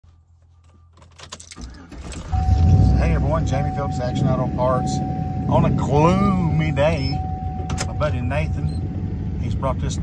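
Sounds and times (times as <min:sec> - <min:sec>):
faint low vehicle hum: 0:00.1 - 0:10.0.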